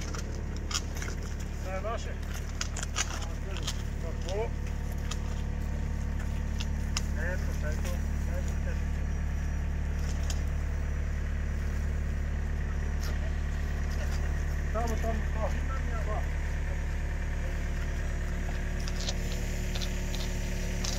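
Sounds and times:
engine idling: 0.0 - 20.9
faint voices: 11.3 - 20.9.

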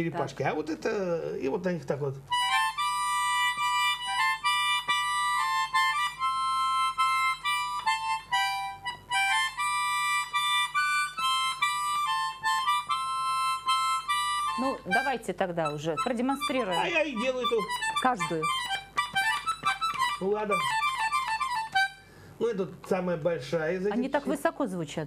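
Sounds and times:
small button accordion tune: 2.3 - 22.1.

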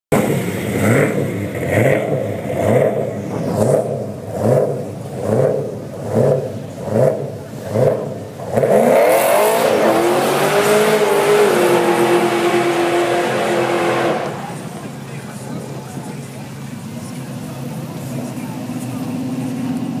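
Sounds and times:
car engine revving: 0.1 - 20.0.

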